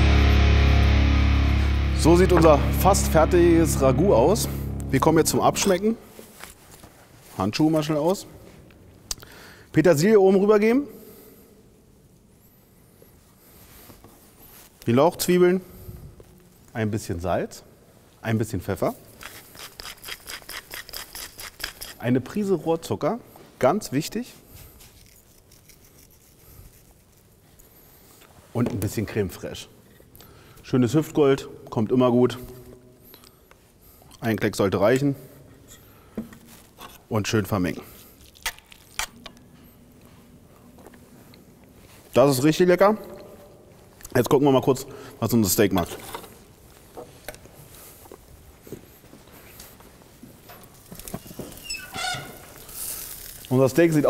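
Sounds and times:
faint handling sounds: 5.6s - 9.1s, 32.6s - 42.4s, 52.3s - 54.0s
grill lid opening with squeak: 51.5s - 52.4s.

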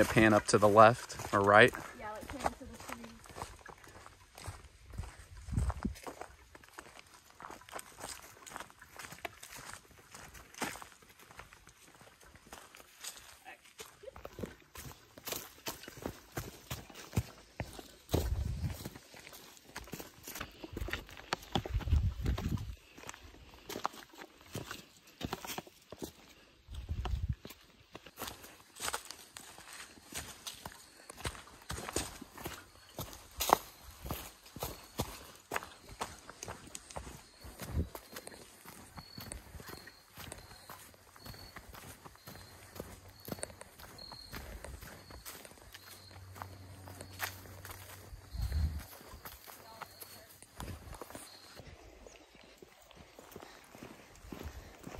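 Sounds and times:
footsteps on dry leaves: 0.0s - 54.9s.

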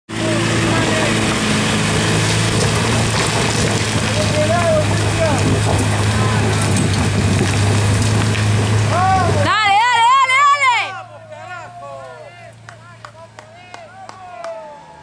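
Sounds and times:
suv engine climbing under load: 0.2s - 10.9s
people calling out: 8.9s - 15.0s.

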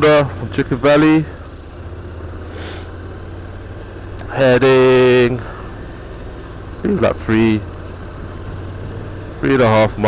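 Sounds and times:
motorcycle engine rumble: 0.0s - 10.0s
road noise: 0.0s - 10.0s.

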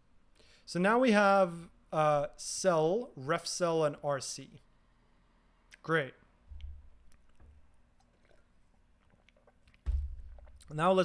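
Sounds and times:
drinking glass thumps: 9.8s - 10.8s.

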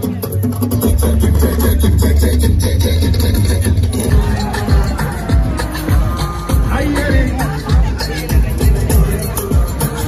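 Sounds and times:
loud live concert music: 0.0s - 10.0s.

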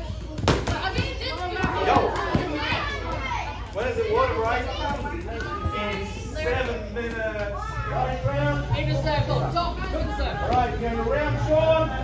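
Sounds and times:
children talking and calling out: 0.0s - 11.4s.

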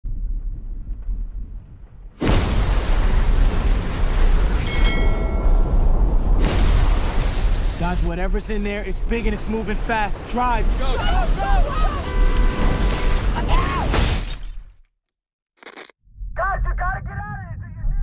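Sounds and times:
low rumble: 0.0s - 7.7s.

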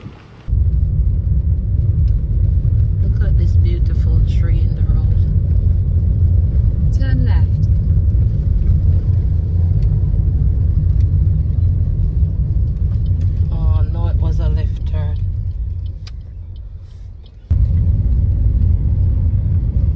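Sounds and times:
car driving low rumble: 0.0s - 19.9s.

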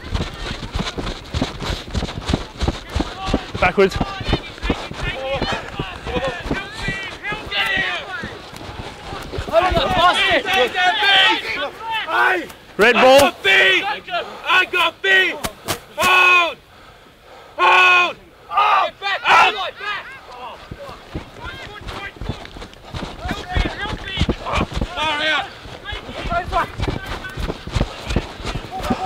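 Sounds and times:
players shouting: 2.6s - 16.7s, 17.5s - 29.0s.

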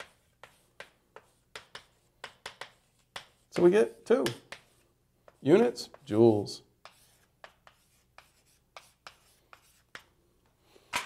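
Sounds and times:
writing on a board: 0.0s - 6.2s, 6.8s - 10.2s.

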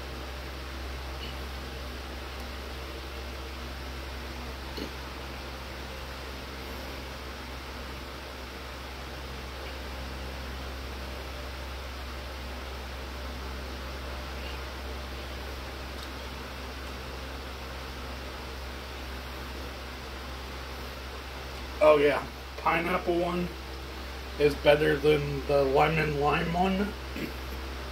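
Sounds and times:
steady background hiss: 0.0s - 27.9s.

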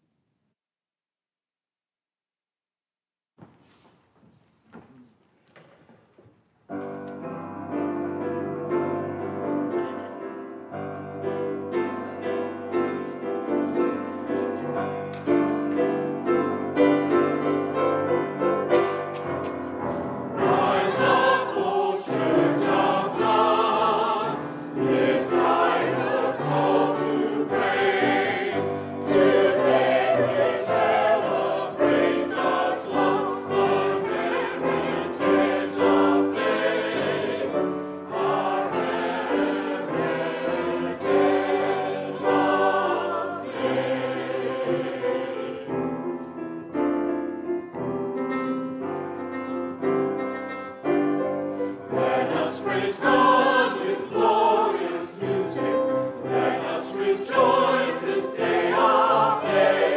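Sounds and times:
grand piano: 3.4s - 59.9s
mixed choir singing: 19.8s - 46.3s, 51.6s - 59.9s.

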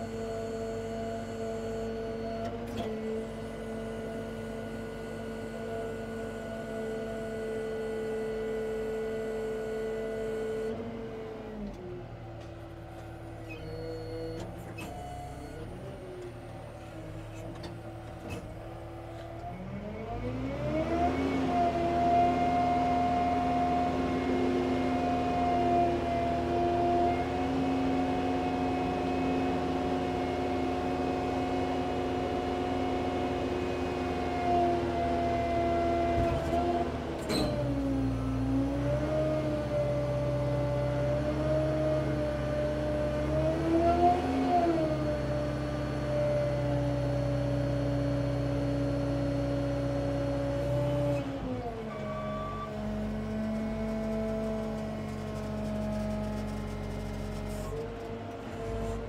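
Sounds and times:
diesel engine revving: 18.5s - 26.6s.

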